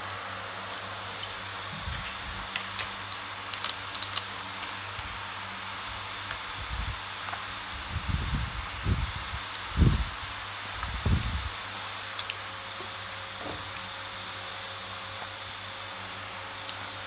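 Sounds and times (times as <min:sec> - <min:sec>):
low electrical hum and hiss: 0:00.0 - 0:17.0.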